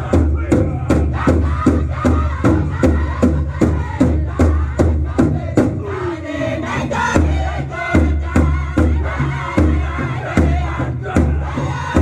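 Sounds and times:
group of voices chanting: 0:00.0 - 0:12.0
steadily beaten drum: 0:00.0 - 0:12.0.

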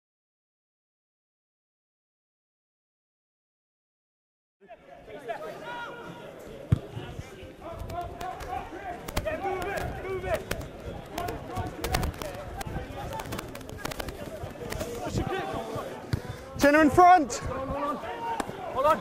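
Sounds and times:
players shouting: 0:04.7 - 0:19.0.

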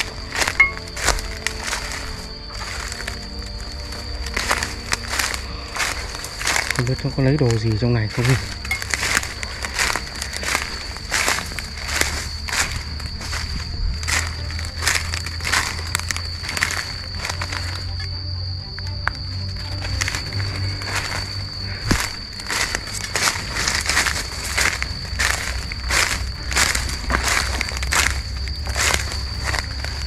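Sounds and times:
footsteps crunching dry leaves: 0:00.0 - 0:30.0
steady high-pitched tone: 0:00.0 - 0:30.0.

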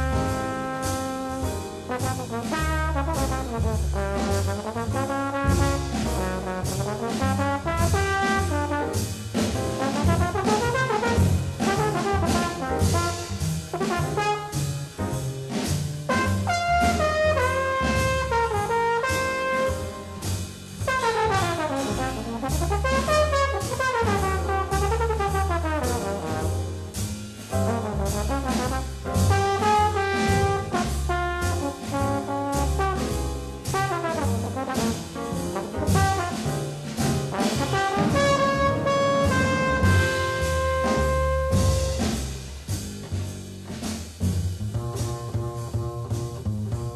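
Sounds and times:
horn playing fast melody: 0:00.0 - 0:09.1, 0:09.8 - 0:14.8, 0:16.1 - 0:20.2, 0:20.8 - 0:26.7, 0:27.7 - 0:42.1
drums with cymbal strokes: 0:00.0 - 0:46.9
piano: 0:00.0 - 0:46.9
string bass: 0:00.0 - 0:46.9.

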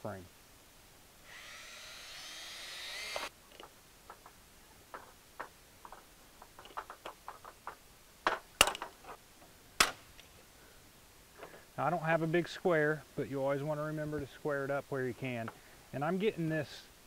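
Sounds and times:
cordless drill whining: 0:01.3 - 0:03.3.

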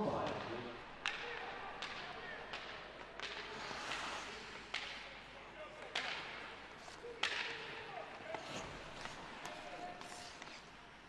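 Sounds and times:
hockey sticks striking puck: 0:00.0 - 0:11.0
steady hiss from rink: 0:02.9 - 0:05.4, 0:06.2 - 0:11.0.

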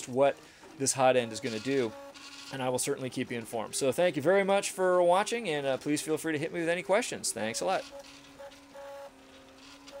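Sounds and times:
stepper motors whining: 0:00.0 - 0:02.8, 0:07.4 - 0:10.0.

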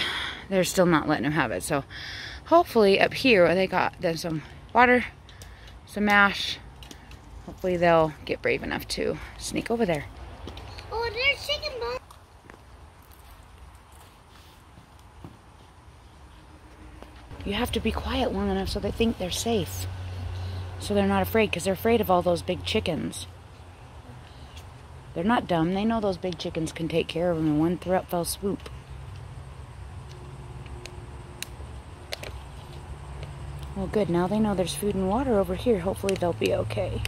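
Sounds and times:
steady low rumble: 0:16.4 - 0:24.1
low steady rumble: 0:16.4 - 0:37.0.

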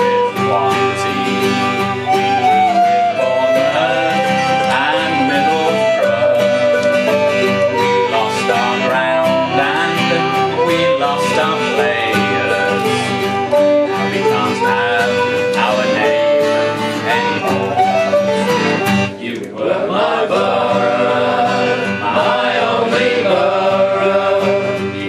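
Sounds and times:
fiddle melody: 0:00.0 - 0:19.3, 0:20.0 - 0:25.0
plucked string instrument: 0:00.0 - 0:19.6
strummed acoustic guitar: 0:00.0 - 0:25.0.

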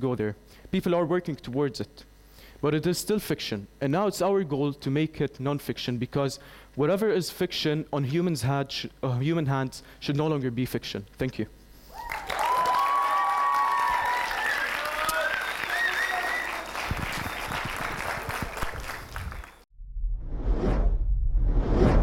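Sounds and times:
audience applauding: 0:11.9 - 0:19.6
whistles and cheers: 0:11.9 - 0:19.6
deep rumble: 0:19.8 - 0:22.0
whooshes: 0:19.9 - 0:22.0.

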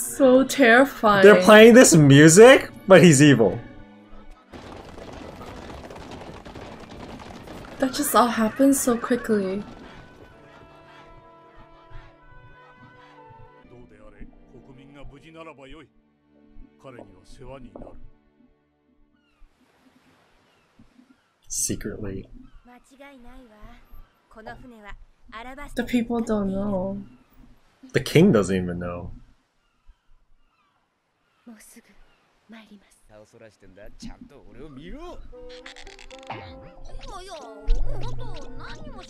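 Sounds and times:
character dialogue: 0:00.0 - 0:03.6
background music: 0:00.0 - 0:04.6, 0:07.8 - 0:19.2, 0:34.5 - 0:39.0.

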